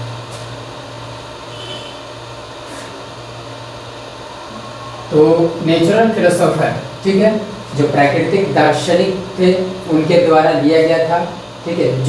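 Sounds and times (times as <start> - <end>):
low hum with hiss: 0.0 - 12.0.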